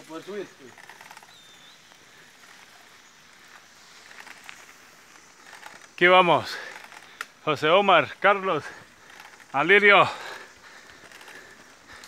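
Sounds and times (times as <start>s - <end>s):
bike tyres rolling on dirt: 0.0s - 12.0s
small clicks: 0.6s - 2.9s, 3.5s - 7.4s, 8.6s - 12.0s.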